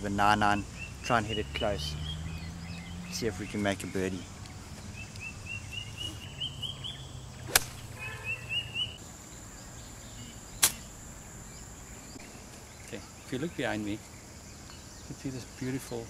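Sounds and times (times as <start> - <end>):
bird chirping: 0.0 - 16.0
golf club striking ball: 7.4 - 8.1.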